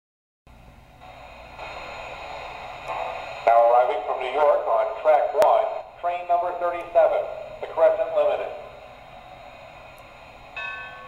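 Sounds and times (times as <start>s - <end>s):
faint steady hum: 0.5s - 11.0s
announcer voice through tinny speaker: 3.5s - 8.7s.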